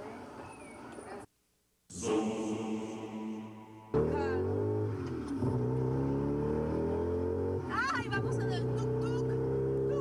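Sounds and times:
small vehicle engine accelerating: 0:03.9 - 0:10.0.

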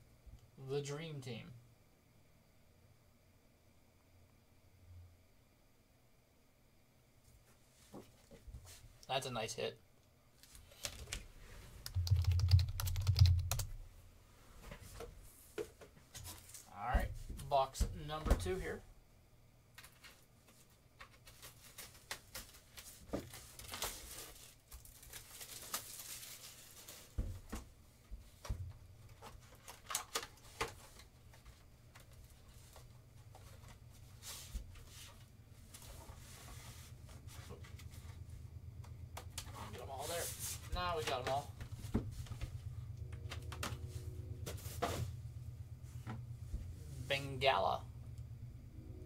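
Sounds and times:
steady low hum: 0:00.0 - 0:19.8, 0:26.8 - 0:49.0
cellophane rustling and tearing: 0:21.2 - 0:27.2.

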